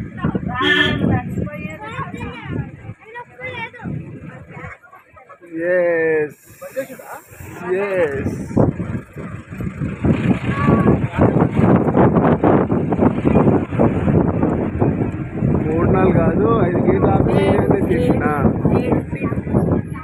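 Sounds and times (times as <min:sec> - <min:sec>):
voices: 0:00.0 - 0:20.0
wind and road noise: 0:00.0 - 0:20.0.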